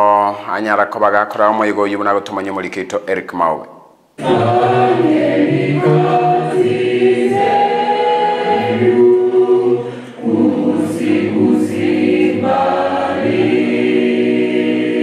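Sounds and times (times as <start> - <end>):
group singing a hymn: 4.2 - 15.0.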